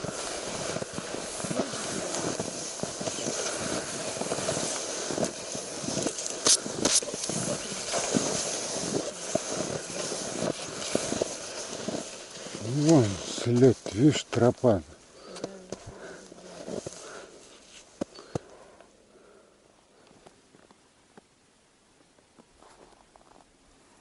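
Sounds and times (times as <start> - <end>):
footsteps crunching in snow: 0.0 - 18.5, 22.4 - 23.5
rustling: 0.0 - 18.8.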